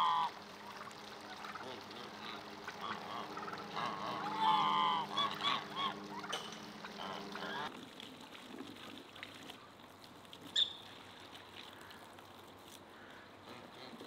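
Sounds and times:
geese honking: 0.0 - 7.7.

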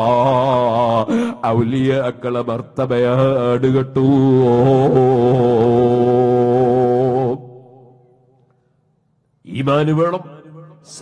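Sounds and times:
man chanting a slow melody: 0.0 - 7.6.

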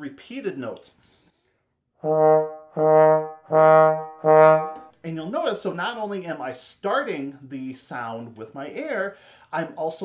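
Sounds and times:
trombone low notes: 2.0 - 4.9.

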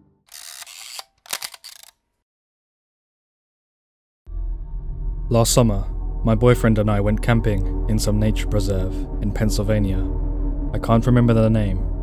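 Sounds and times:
camera shutter clicking and whirring: 0.3 - 2.0.

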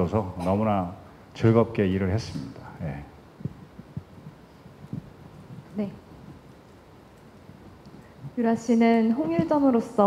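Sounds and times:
faint hum: 0.0 - 10.0
microphone handling thumps: 3.3 - 6.5, 9.2 - 9.7.

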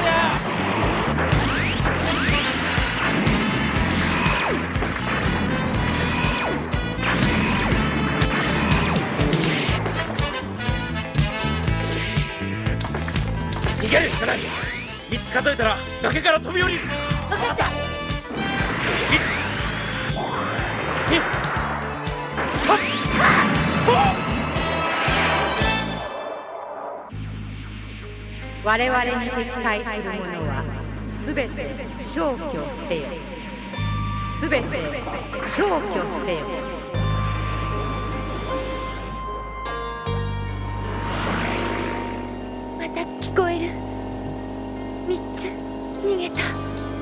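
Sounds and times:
background music: 0.0 - 47.0
rising whine: 0.0 - 47.0
blaster shots: 0.3 - 10.5, 18.0 - 28.1
rushing engine and wind noise: 40.5 - 47.0.

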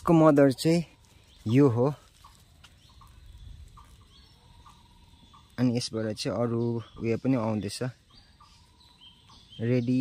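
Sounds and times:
faint bird calls: 0.0 - 10.0.

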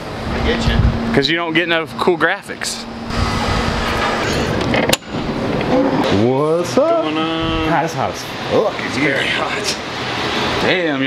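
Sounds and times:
rushing noise with low rumble: 0.0 - 1.3, 2.8 - 5.8.

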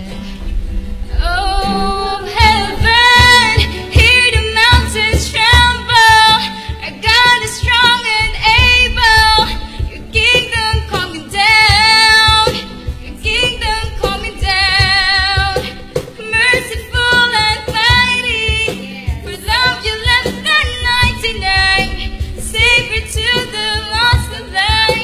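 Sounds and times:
woman singing: 0.0 - 25.0.

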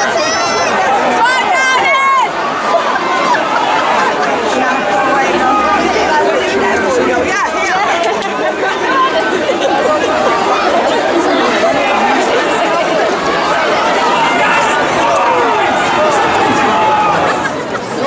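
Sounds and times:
crowd babble: 0.0 - 18.0.

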